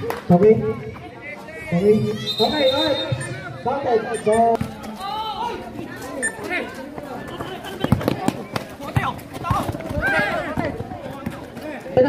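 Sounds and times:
spectators and players shouting: 0.0s - 12.0s
basketball bouncing on concrete: 7.0s - 12.0s.

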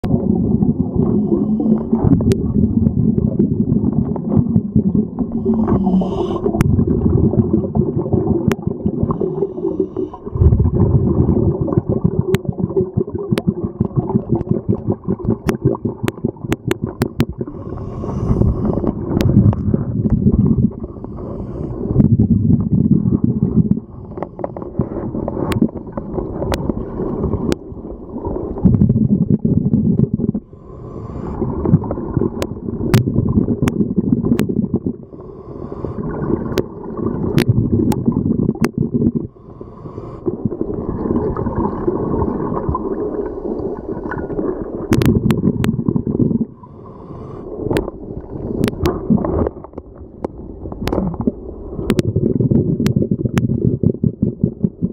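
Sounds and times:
exhaled air bubbling underwater: 0.0s - 54.9s.

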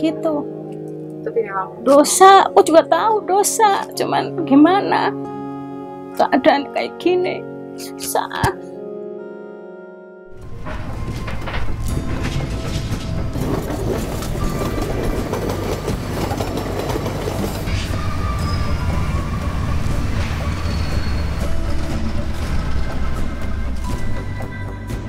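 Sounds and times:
train rumbling on tracks: 10.3s - 24.9s
wheels clacking over rails: 10.4s - 24.3s.

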